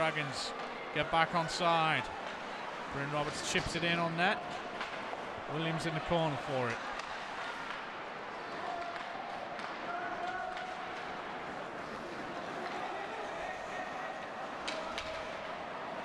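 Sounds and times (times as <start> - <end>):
murmur of crowd voices: 0.0 - 16.0.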